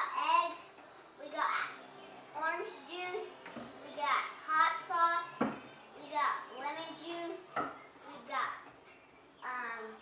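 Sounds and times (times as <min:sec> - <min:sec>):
young child speaking: 0:00.0 - 0:08.7, 0:09.4 - 0:10.0.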